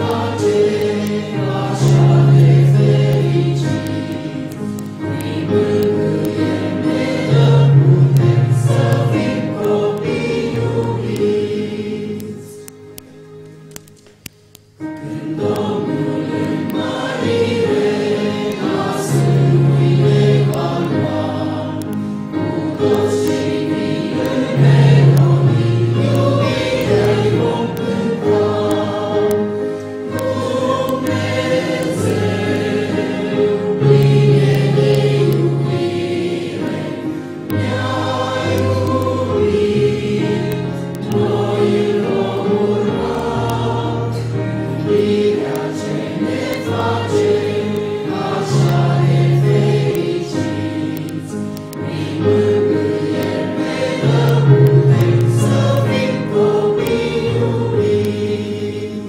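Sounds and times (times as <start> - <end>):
congregation singing a hymn: 0.0 - 13.9, 14.8 - 59.0.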